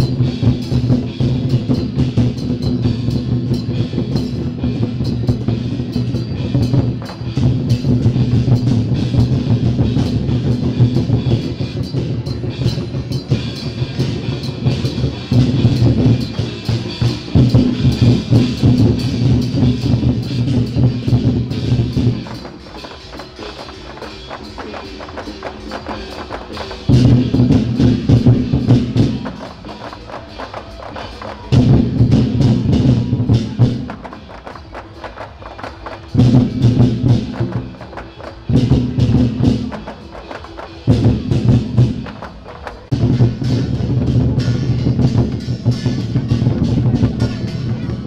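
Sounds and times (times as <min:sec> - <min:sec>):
drum-led music: 0:00.0 - 0:48.0.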